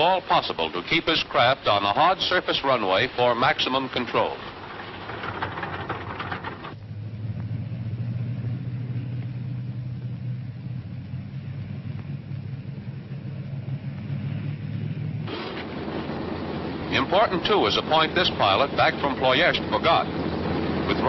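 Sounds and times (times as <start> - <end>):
low mechanical drone: 0.0 - 21.0
rough rushing noise: 1.8 - 7.0, 11.4 - 21.0.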